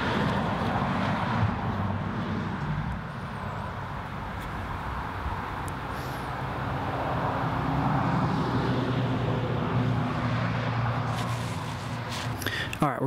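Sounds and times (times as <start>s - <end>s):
engine passing by: 0.0s - 12.8s.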